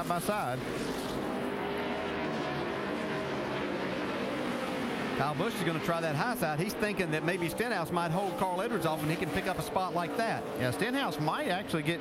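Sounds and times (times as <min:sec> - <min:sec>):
racing car engines droning: 0:00.0 - 0:12.0.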